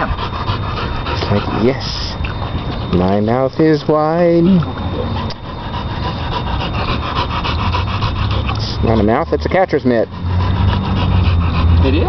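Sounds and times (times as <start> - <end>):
dog panting fast: 0.0 - 3.5, 5.1 - 12.0.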